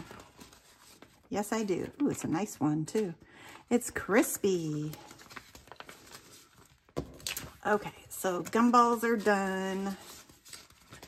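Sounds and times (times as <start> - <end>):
paper banknotes rustling: 0.0 - 3.2, 4.1 - 11.0
plastic envelope clicking: 5.2 - 7.6.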